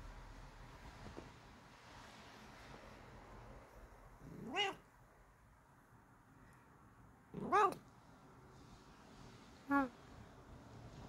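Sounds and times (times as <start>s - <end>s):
cat meowing: 4.3s - 4.8s, 7.4s - 7.8s.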